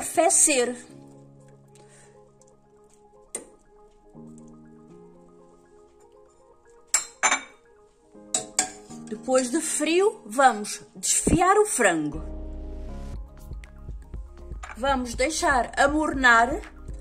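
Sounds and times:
quiet background music: 0.0 - 17.0
metal utensils clinking on pot: 6.9 - 7.6, 8.3 - 9.2.

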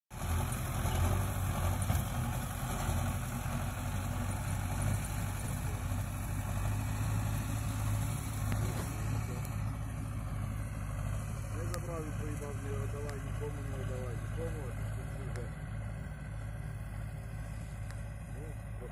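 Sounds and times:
low engine hum: 0.1 - 18.9.

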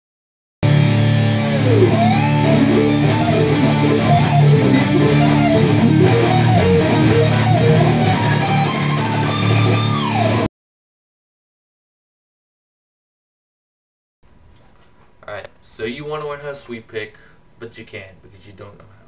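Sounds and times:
loud electric guitar music: 0.6 - 10.5.

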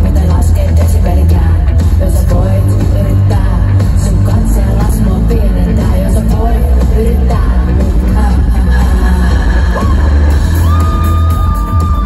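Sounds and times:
pop-rock band playing live: 0.0 - 12.0.

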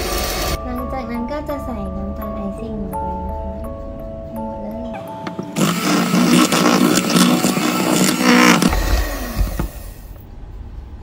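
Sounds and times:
electric hand mixer beating: 0.0 - 0.6, 5.4 - 10.2.

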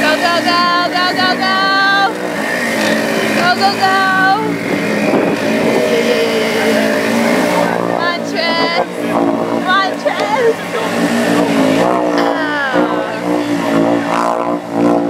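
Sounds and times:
voices shouting: 0.0 - 14.3
atv engines revving: 0.0 - 15.0.

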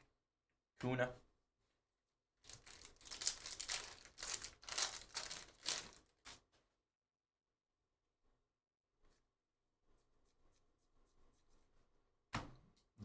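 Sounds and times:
card pack wrapper tearing and crinkling: 2.5 - 6.4.

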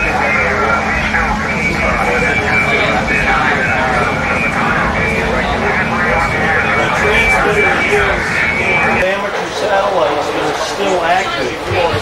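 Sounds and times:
overlapping voices talking: 0.0 - 12.0.

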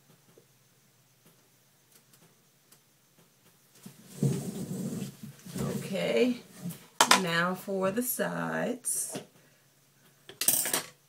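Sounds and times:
faint ticks: 1.2 - 3.6
rustling and knocking near microphone: 3.2 - 7.2.

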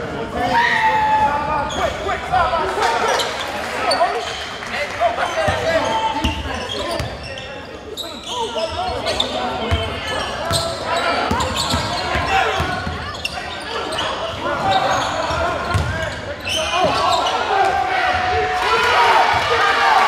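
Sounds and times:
echoing hubbub of voices: 0.0 - 20.0.

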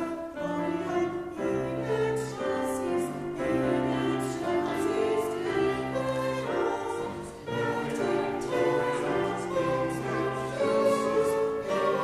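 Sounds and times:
choir singing in harmony: 0.0 - 12.0.

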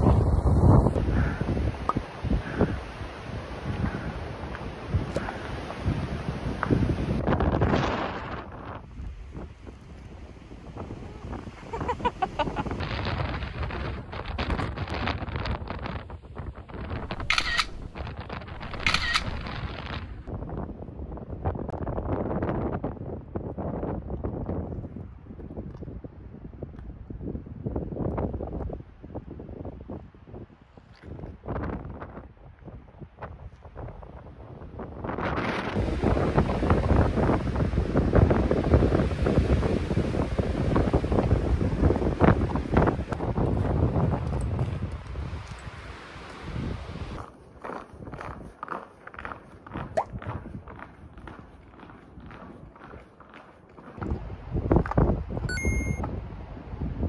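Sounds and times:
wind buffeting microphone: 0.0 - 57.0
footsteps crunching on snow: 43.5 - 55.0.

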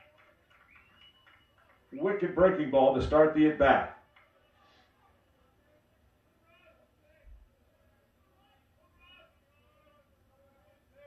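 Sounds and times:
faint distant voices: 1.8 - 11.0.

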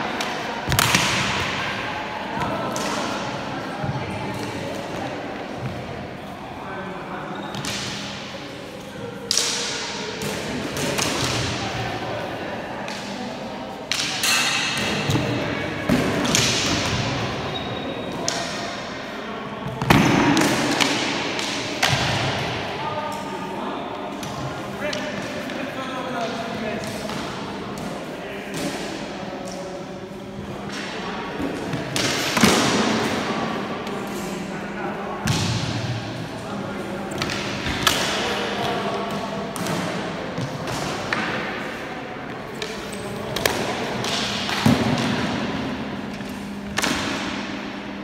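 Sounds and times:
voices chattering in echoing hall: 0.0 - 48.0.

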